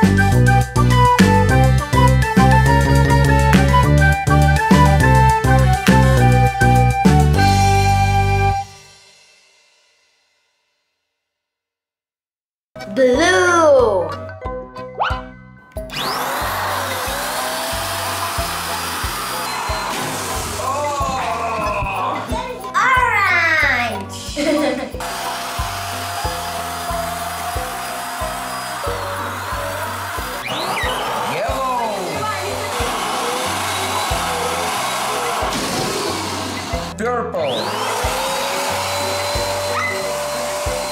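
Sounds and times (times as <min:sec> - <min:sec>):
children's music with steady beat: 0:00.0 - 0:09.9, 0:12.8 - 0:40.9
electric balloon pump blowing air: 0:15.8 - 0:22.4, 0:25.0 - 0:40.9.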